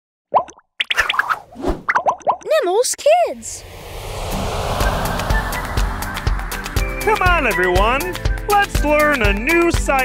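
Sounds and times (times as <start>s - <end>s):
rising chirps: 3.5s - 8.3s.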